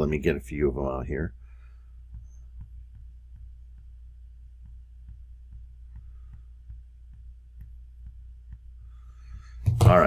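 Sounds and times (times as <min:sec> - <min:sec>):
low electrical hum: 0:00.0 - 0:10.0
soft mouse clicks: 0:04.6 - 0:09.6.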